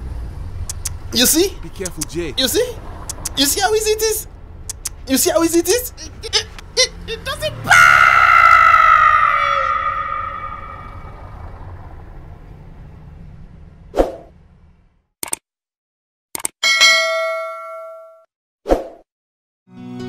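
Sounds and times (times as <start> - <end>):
mouse clicks: 0.7 - 1.0, 3.1 - 3.4, 4.7 - 5.0.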